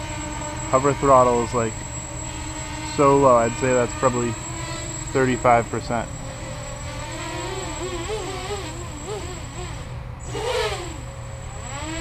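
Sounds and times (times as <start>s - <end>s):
quadcopter propellers whining: 0.0s - 12.0s.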